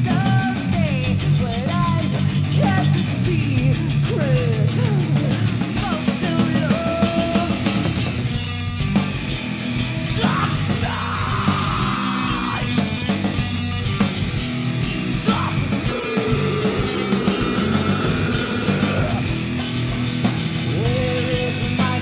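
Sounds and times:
bass guitar: 0.0 - 22.0
distorted electric guitars: 0.0 - 22.0
drums: 0.0 - 22.0
person yelling vocals: 10.1 - 12.8, 15.2 - 19.3.

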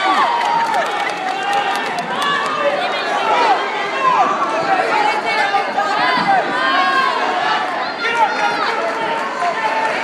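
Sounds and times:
crowd of voices talking: 0.0 - 10.0.

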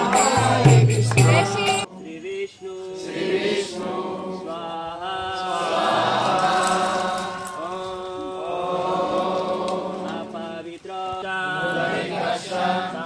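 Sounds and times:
group chanting: 0.0 - 13.0.

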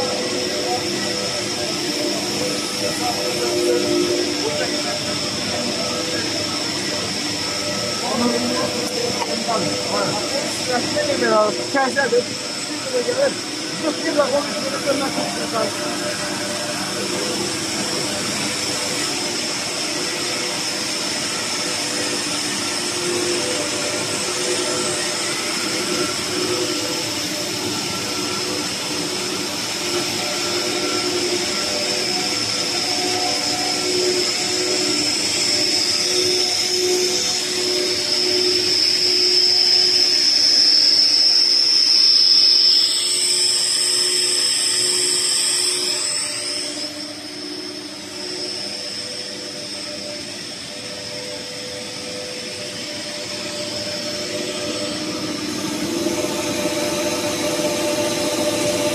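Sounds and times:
high-pitched machine whine: 0.0 - 58.9
machinery drone: 0.0 - 58.9.

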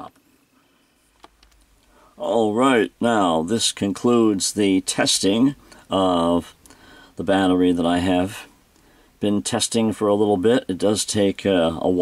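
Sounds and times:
faint clicks: 1.2 - 2.0.

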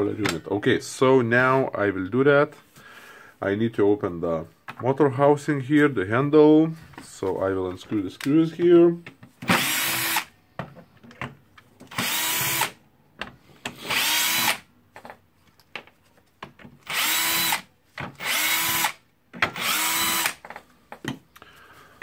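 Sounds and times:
cordless drill spinning: 9.4 - 10.3, 11.9 - 12.8, 13.6 - 14.7, 16.8 - 20.7.

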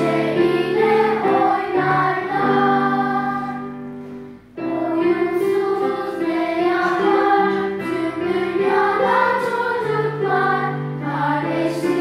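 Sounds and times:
group of voices singing: 0.0 - 3.9, 4.6 - 12.0.

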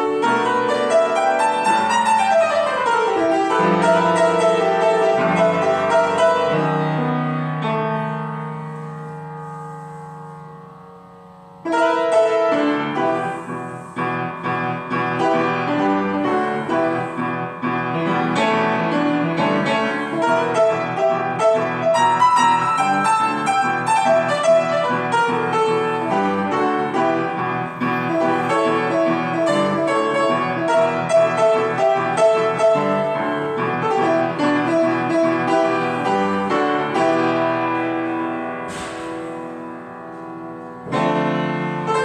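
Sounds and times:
solo piano playing: 0.0 - 42.0.

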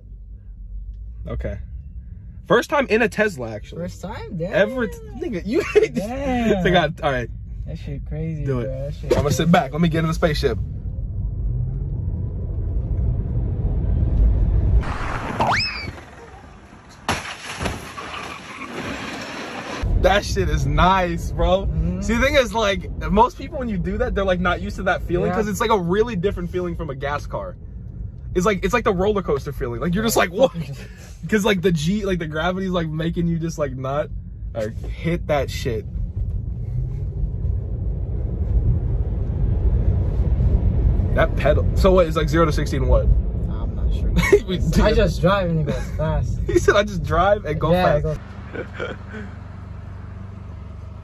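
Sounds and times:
road and tyre noise in car: 0.0 - 51.0
rising whistle: 14.8 - 16.1.

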